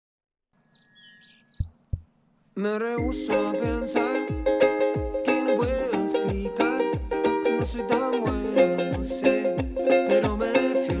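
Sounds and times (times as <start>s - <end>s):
faint bird chirps: 0.5s - 3.2s
low thumps: 1.6s - 2.2s.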